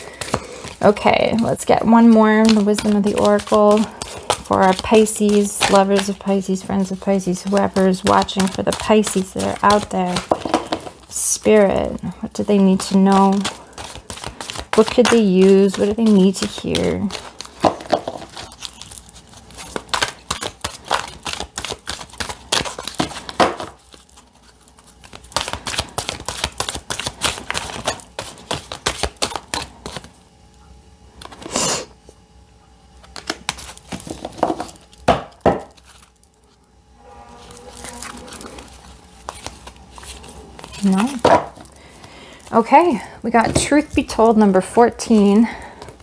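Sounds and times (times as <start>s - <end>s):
cards being shuffled: 0.1s - 30.1s, 33.0s - 36.6s, 37.4s - 42.9s.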